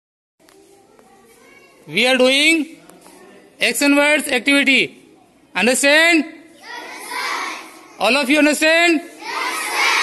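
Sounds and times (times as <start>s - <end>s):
children chattering: 0.4s - 3.9s, 4.9s - 5.5s, 6.4s - 10.0s
man speaking loudly: 1.9s - 2.8s, 3.6s - 6.5s, 8.0s - 9.2s.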